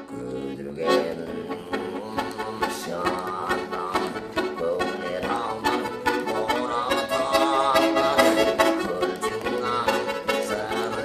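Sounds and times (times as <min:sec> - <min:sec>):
button accordion playing: 0:00.0 - 0:11.0.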